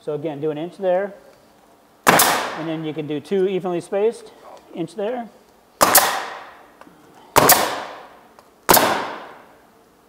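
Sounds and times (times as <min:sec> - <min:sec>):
nail gun shots: 0:02.0 - 0:02.7, 0:05.8 - 0:06.6, 0:07.4 - 0:08.1, 0:08.7 - 0:09.5.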